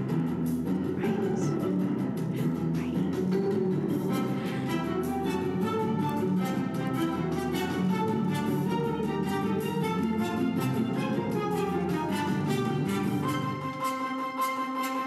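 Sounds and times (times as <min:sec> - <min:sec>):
instrumental music from speaker: 0:00.0 - 0:15.0.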